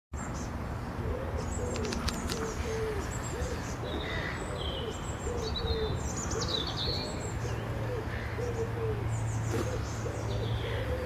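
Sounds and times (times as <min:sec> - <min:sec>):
pigeon cooing: 0:01.0 - 0:11.0
small birds chirping: 0:01.2 - 0:11.0.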